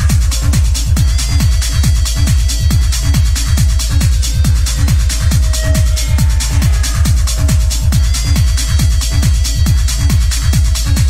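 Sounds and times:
hard techno music: 0.0 - 11.0.

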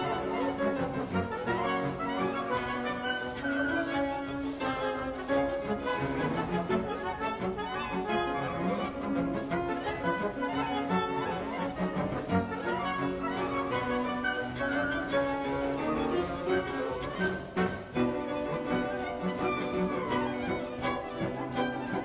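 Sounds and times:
orchestral strings music: 0.0 - 22.0.

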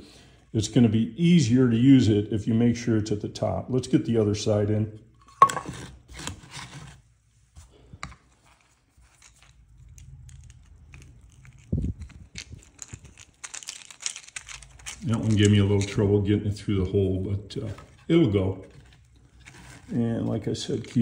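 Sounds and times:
small hardware clicks and rustles: 8.1 - 16.0.

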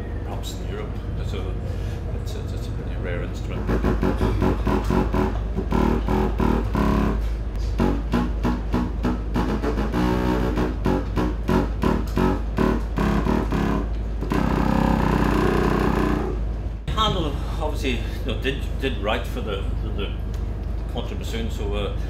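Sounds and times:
steady low hum: 0.0 - 22.0
contrabassoon playing low notes: 3.5 - 16.4.

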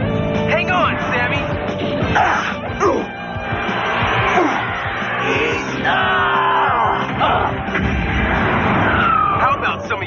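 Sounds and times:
voices shouting: 2.1 - 7.8
loud rushing blast: 7.6 - 9.5
falling whistle: 8.8 - 9.4.

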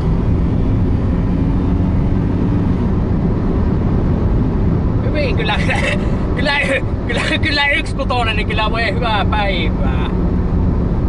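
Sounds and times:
engine and road rumble: 0.0 - 11.0.

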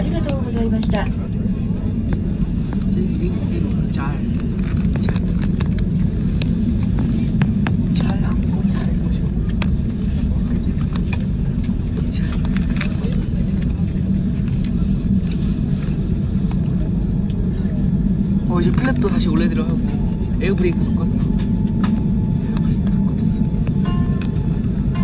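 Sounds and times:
airplane cabin rumble: 0.0 - 25.0.

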